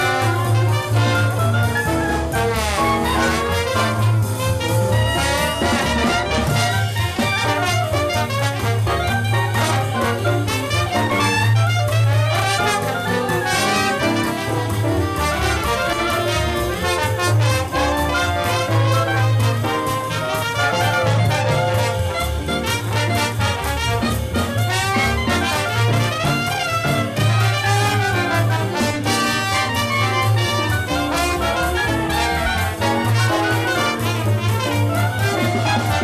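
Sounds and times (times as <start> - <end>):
clarinet: 0.0 - 36.0
drums: 0.0 - 36.0
saxophone: 0.0 - 36.0
trombone: 0.0 - 36.0
trumpet: 0.0 - 36.0
walking double bass: 0.0 - 36.0.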